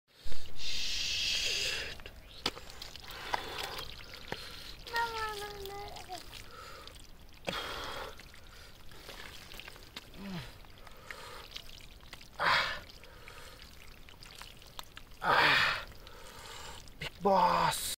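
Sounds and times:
mud squelching and sloshing: 0:02.0 - 0:17.6.

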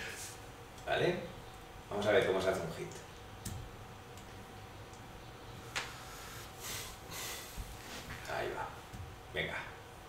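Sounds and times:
soft breathing through nose: 0:05.9 - 0:08.2.

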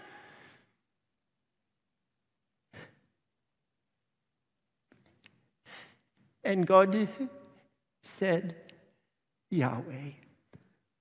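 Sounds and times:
man breathing: 0:00.0 - 0:00.8, 0:05.6 - 0:06.2.

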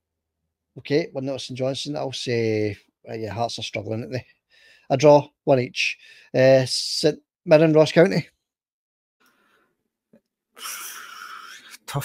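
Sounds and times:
man sighing: 0:10.6 - 0:11.8.

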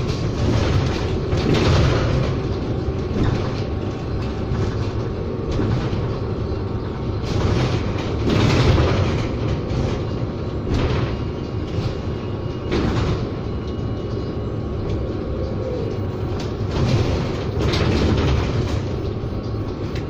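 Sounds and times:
bus jolts: 0:00.0 - 0:20.0
bus road and tyre rumble: 0:00.0 - 0:20.0
interior rattles: 0:00.0 - 0:20.0.

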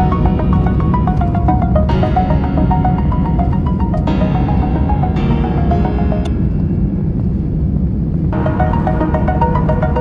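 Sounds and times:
airliner cabin rumble: 0:00.0 - 0:10.0.

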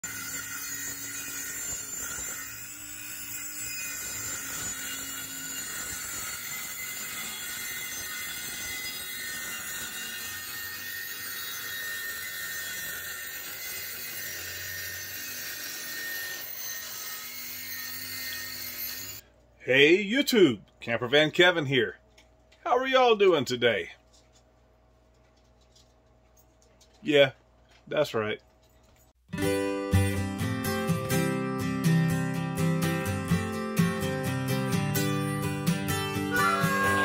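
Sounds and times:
circular saw cutting plywood: 0:00.0 - 0:19.2, 0:36.2 - 0:37.0.

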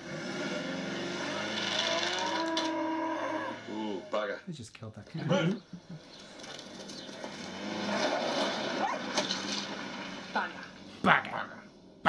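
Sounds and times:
vehicle driving past: 0:00.0 - 0:04.4, 0:06.0 - 0:11.0.

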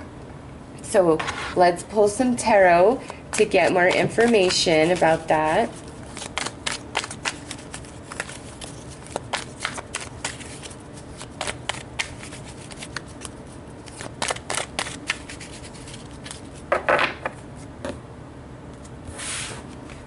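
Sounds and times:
cards being shuffled: 0:03.0 - 0:16.6.

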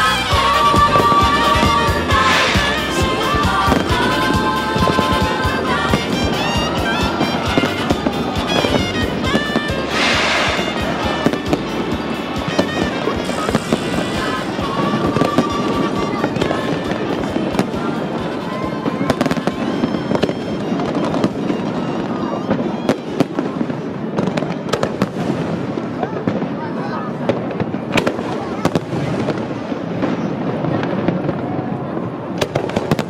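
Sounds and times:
fireworks bangs and crackles: 0:00.0 - 0:33.0.

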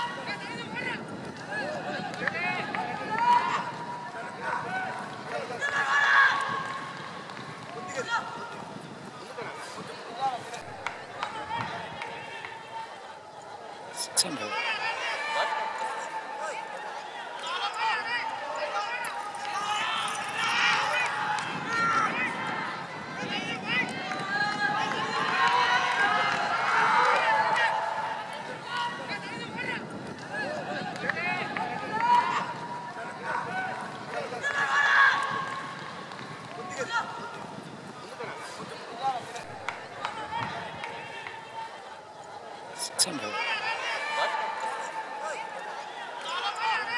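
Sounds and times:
people calling and talking: 0:00.0 - 0:46.9.

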